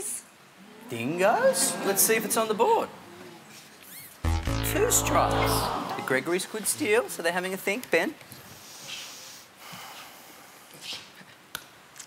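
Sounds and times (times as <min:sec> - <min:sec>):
breaths: 0:08.4 - 0:10.9.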